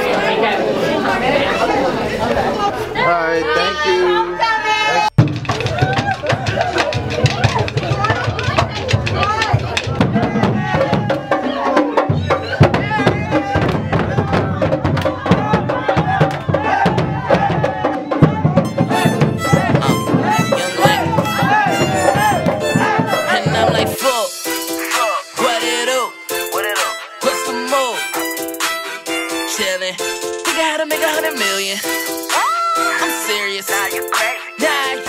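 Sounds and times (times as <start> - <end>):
drum-heavy music: 5.2 - 35.0
voices over music: 7.7 - 28.0.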